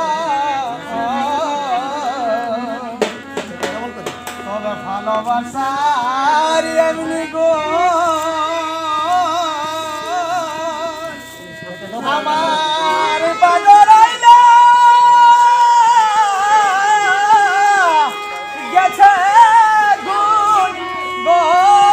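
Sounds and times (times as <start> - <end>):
harmonium melody: 0.0 - 21.9.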